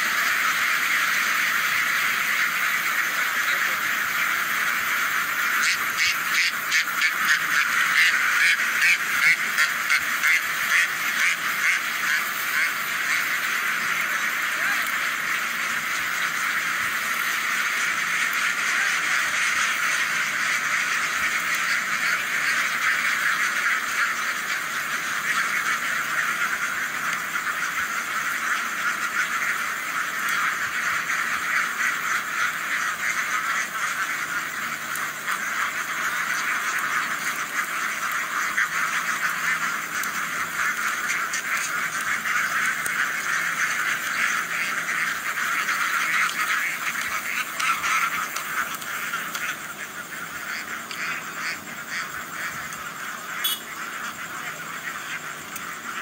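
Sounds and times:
flock of ducks quacking: 0:00.0 - 0:56.0.

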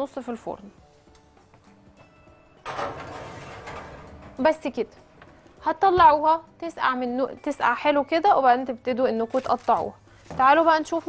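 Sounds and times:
metal tray scraping into oven: 0:02.6 - 0:05.5.

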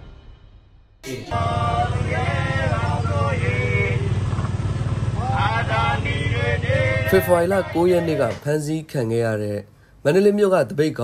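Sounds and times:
marchers chanting slogans: 0:01.0 - 0:04.2, 0:05.1 - 0:08.4
small motorcycle engine running: 0:01.1 - 0:08.1.

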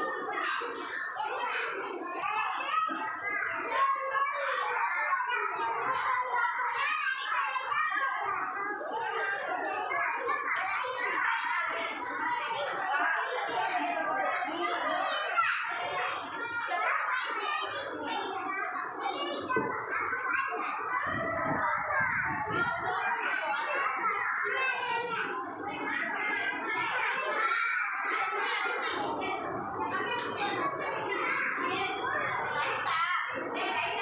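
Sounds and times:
young children chattering: 0:00.0 - 0:34.0.

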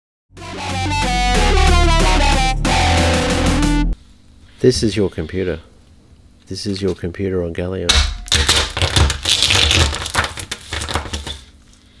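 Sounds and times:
metal can crunching and cracking: 0:07.9 - 0:11.5.

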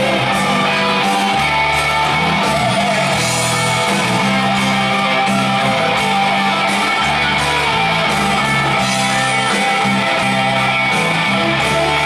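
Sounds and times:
bass guitar line: 0:00.0 - 0:12.0
electric guitar: 0:00.0 - 0:12.0.

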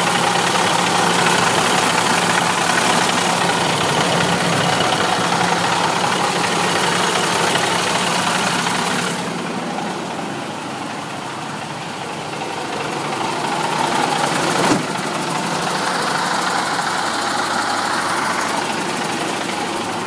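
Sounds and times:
diesel truck engine idling: 0:00.0 - 0:20.0.

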